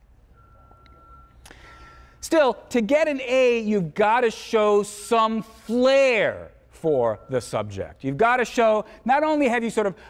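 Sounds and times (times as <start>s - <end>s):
faint steady high tone: 0.2s - 2.1s, 6.8s - 8.1s.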